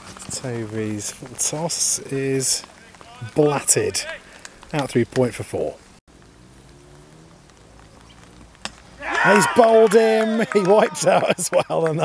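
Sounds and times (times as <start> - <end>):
quiet outdoor ambience: 0.0 - 12.0.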